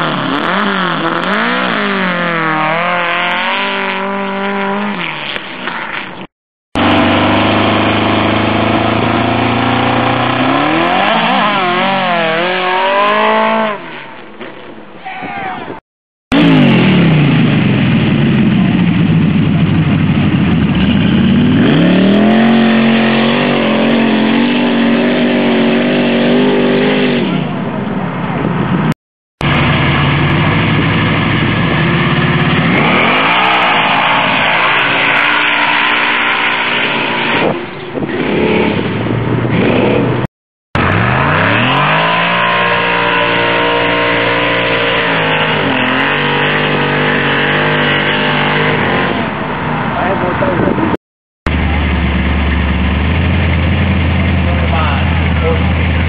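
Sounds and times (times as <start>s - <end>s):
off-road engines revving high: 0.0s - 14.1s, 16.3s - 27.6s, 29.4s - 56.0s.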